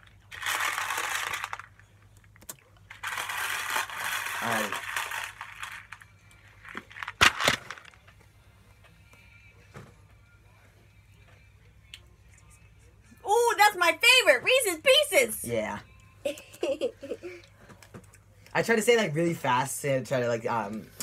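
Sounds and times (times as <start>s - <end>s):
candies rattling in plastic bowl: 0.0s - 2.1s, 2.9s - 8.0s.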